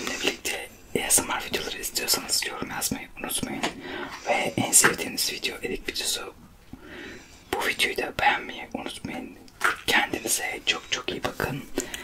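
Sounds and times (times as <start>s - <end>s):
man and woman whispering: 0.0s - 6.4s, 7.5s - 12.0s.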